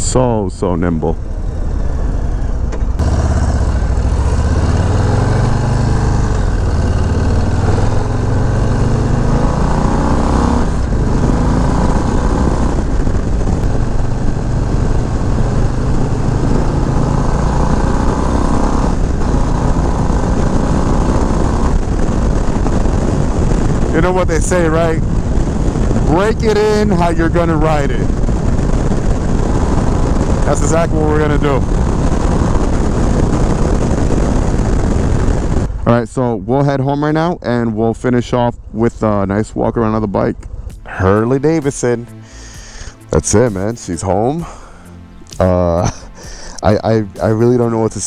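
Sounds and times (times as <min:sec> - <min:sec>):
motorcycle engine accelerating: 0:01.0 - 0:36.0, 0:39.9 - 0:48.0
wind rush on microphone: 0:01.7 - 0:35.9.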